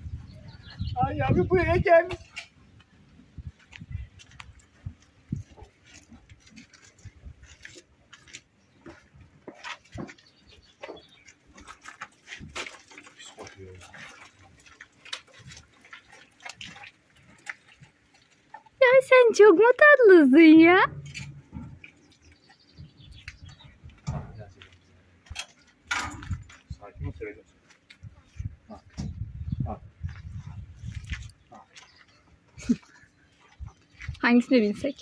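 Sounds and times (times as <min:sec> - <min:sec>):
horses knocking and rustling: 0:00.0 - 0:35.0.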